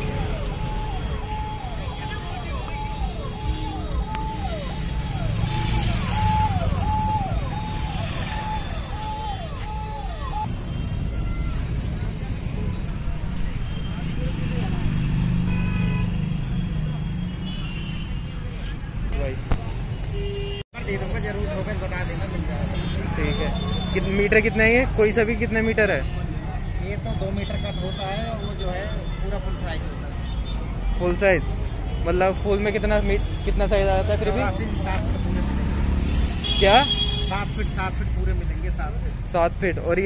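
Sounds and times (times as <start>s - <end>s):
low traffic rumble: 0.0s - 40.0s.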